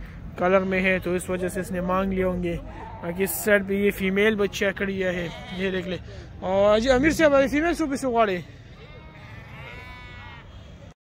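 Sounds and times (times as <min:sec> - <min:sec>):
sheep bleating: 0:04.9 - 0:06.0, 0:08.7 - 0:10.7.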